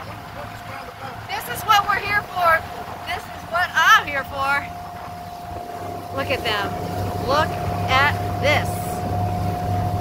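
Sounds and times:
boat wake churning: 0:00.0 - 0:10.0
motorboat engine running: 0:00.0 - 0:10.0.

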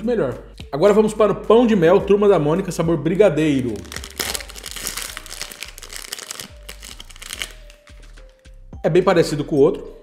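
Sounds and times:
soft background music: 0:00.0 - 0:10.0
plastic wrapper crinkling: 0:03.6 - 0:08.4.

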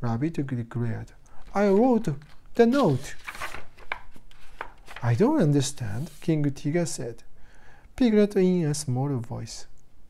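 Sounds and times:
paper page turning: 0:01.4 - 0:06.4.

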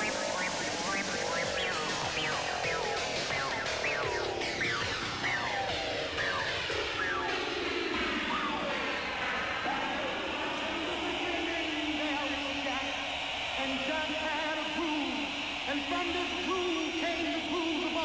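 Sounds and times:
gliding wavering synth tones: 0:00.0 - 0:18.0
techno music: 0:00.0 - 0:18.0.

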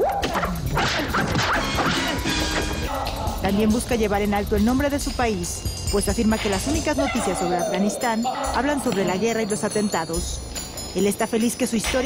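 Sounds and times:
fight soundtrack music: 0:00.1 - 0:03.5.

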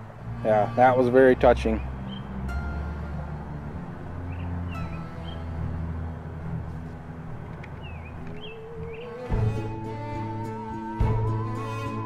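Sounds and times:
soft music of held chords: 0:00.0 - 0:12.0
bird chirps: 0:01.6 - 0:02.8, 0:04.3 - 0:05.5, 0:07.7 - 0:09.6.

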